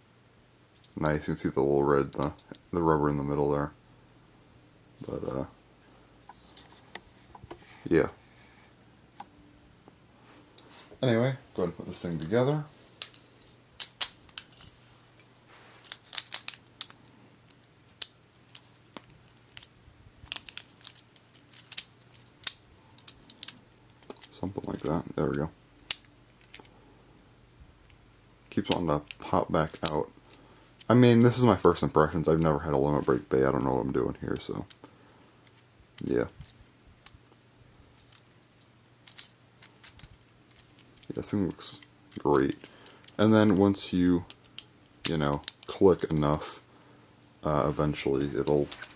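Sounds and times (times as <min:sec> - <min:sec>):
handling rustle: 0:10.2 - 0:25.4, 0:35.4 - 0:46.4, 0:47.6 - 0:48.9
plastic and metal parts clicking: 0:15.8 - 0:19.7, 0:20.3 - 0:26.7, 0:39.0 - 0:43.6, 0:44.3 - 0:45.8.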